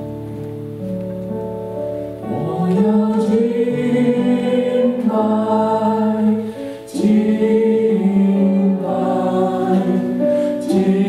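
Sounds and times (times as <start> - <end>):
keyboard accompaniment: 0.0 - 11.0
group singing worship chorus: 2.2 - 11.0.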